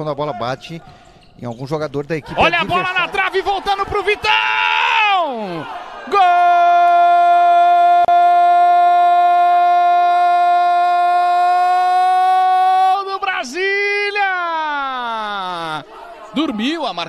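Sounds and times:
sportscaster's drawn-out goal cry: 2.4 - 15.6.

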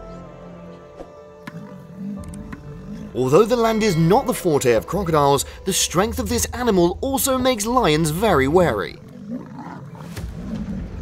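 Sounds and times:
lion growling: 1.4 - 4.0, 6.0 - 11.0.

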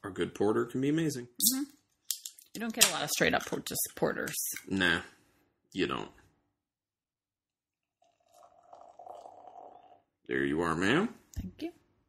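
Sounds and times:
beer pouring into a glass: 7.8 - 10.1.

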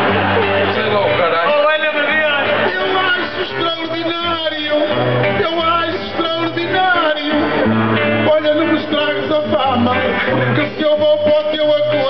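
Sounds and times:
acoustic guitar strumming: 0.0 - 12.0
man singing: 1.3 - 12.0.

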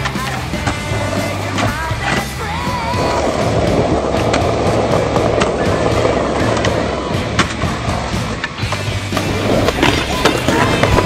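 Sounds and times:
music: 0.0 - 11.0
skateboard clacks: 0.0 - 11.0
skateboard wheels rolling on concrete: 0.0 - 11.0.

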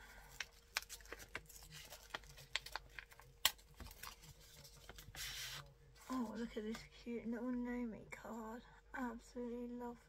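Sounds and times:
packaging crackling: 0.1 - 5.6.

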